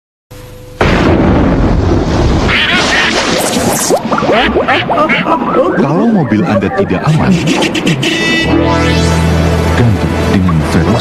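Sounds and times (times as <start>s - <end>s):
videotape hum and hiss: 2.5s - 11.0s.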